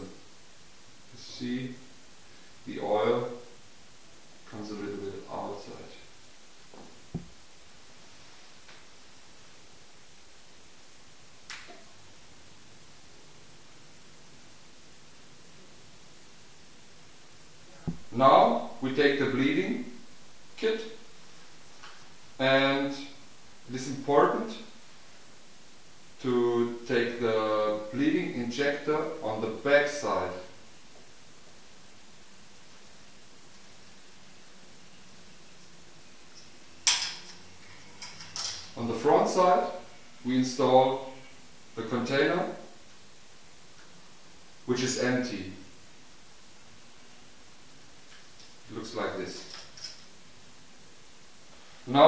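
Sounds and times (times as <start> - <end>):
faint steady hiss: 0.0 - 52.0.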